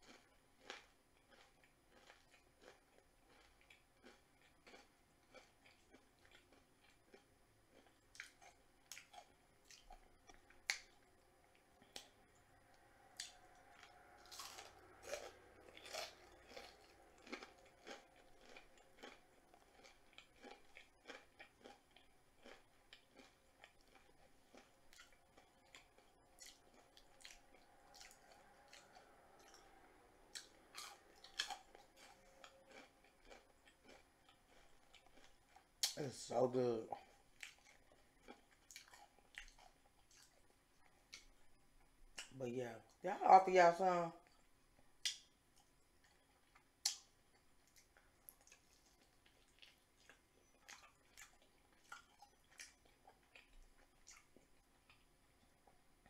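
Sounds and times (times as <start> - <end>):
person chewing crispy food: 0.0 - 42.4, 44.2 - 56.0.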